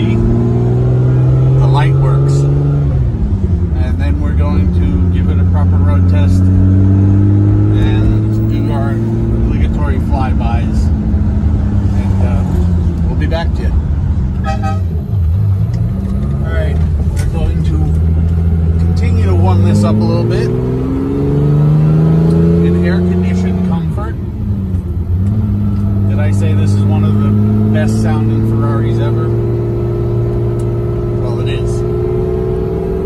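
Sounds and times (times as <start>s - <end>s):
car engine accelerating: 0.0s - 33.0s.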